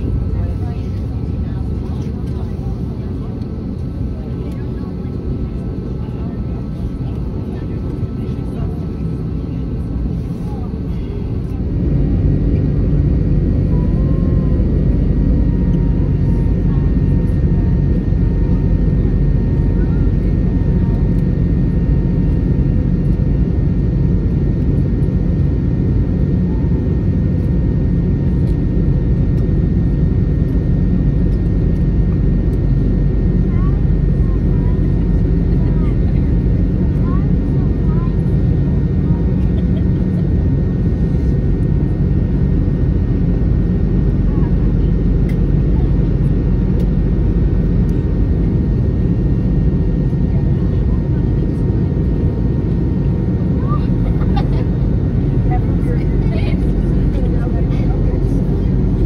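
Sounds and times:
airliner cabin roar: 0.0 - 59.0.

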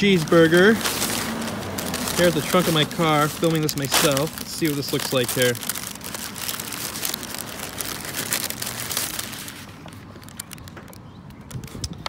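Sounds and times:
paper wrapper crinkling: 0.0 - 11.8.

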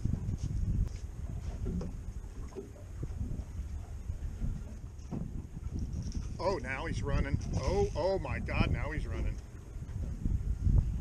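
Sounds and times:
water lapping at boat hull: 0.0 - 11.0
wind rumbling on microphone: 0.0 - 11.0.

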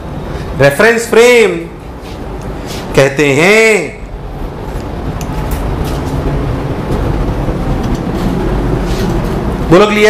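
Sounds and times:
low rumbling room noise: 0.0 - 10.0.

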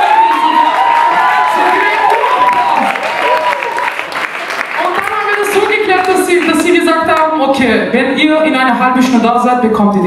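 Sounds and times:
audience applause: 0.0 - 6.7
crowd noise: 0.0 - 9.6.

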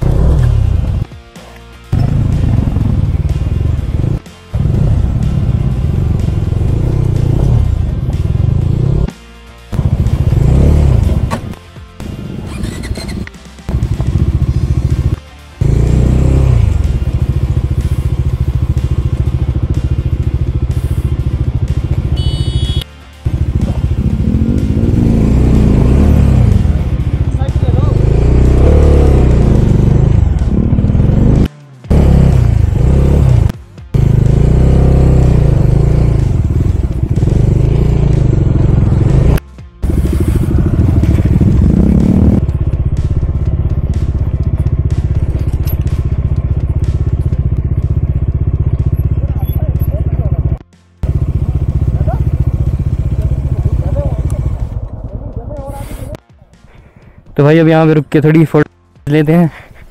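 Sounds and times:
motorcycle engine revving: 0.0 - 1.2, 1.9 - 56.2.

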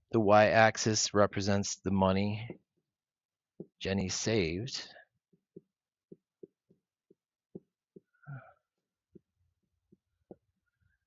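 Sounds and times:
stylus tapping on touchscreen: 5.4 - 8.2.

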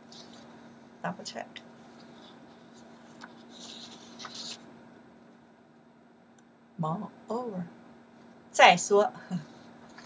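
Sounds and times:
paper cards rustling: 0.0 - 0.5, 1.8 - 4.7
faint steady hum: 0.0 - 10.0.

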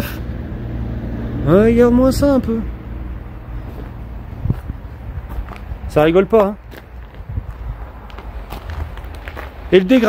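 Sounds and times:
wind on microphone: 3.8 - 6.0, 7.0 - 9.2.

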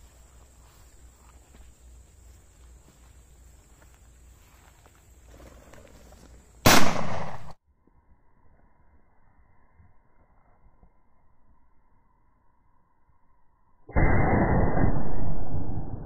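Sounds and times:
loud shotgun shot: 6.6 - 7.6.

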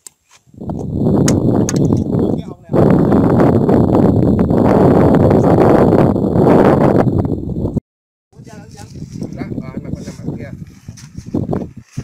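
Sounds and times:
wind buffeting microphone: 0.5 - 7.8, 8.4 - 12.0.

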